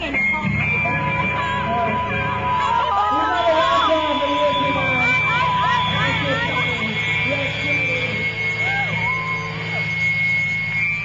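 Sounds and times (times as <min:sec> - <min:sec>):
crowd shouting and cheering: 0:00.0 - 0:11.0
low hum from speakers: 0:00.0 - 0:11.0
steady high tone: 0:00.0 - 0:11.0.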